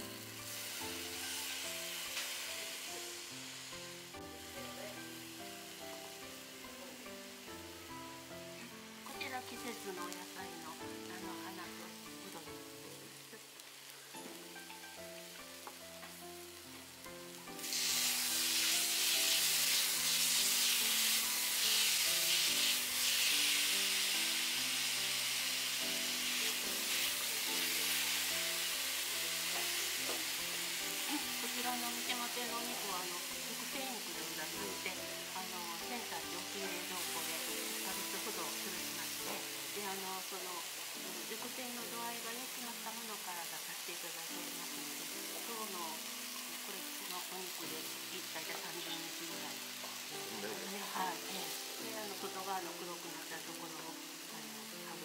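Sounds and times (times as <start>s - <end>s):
food sizzling in hot fat: 0.0s - 55.0s.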